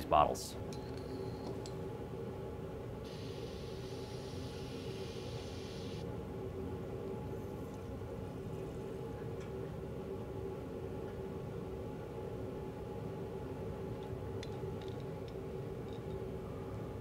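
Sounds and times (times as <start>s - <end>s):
bottle filler hissing: 3.1s - 6.0s.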